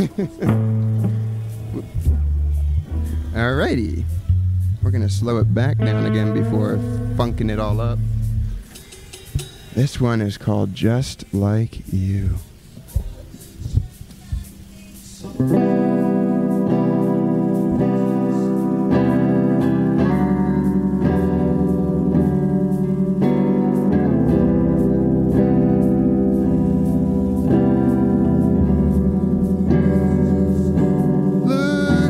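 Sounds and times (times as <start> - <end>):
drum kit steady beat: 0.0 - 32.0
rock band playing: 5.8 - 9.8, 15.4 - 32.0.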